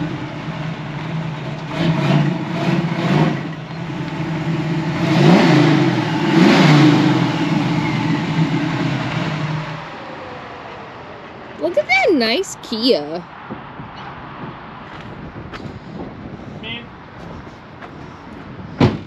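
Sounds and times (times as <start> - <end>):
car engine revving: 0.0 - 12.3.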